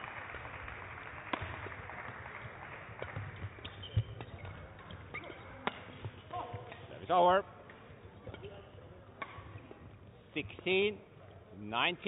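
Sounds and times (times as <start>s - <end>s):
racket hitting shuttlecock: 1.3s - 6.9s, 9.2s - 9.8s
shoe squeaks: 3.6s - 5.6s.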